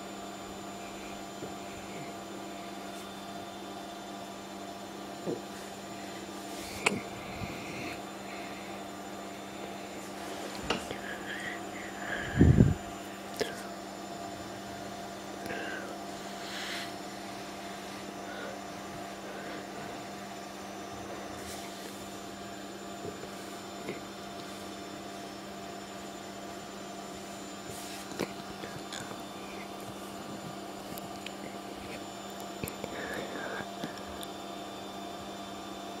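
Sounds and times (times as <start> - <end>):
steady hum: 0.0 - 36.0.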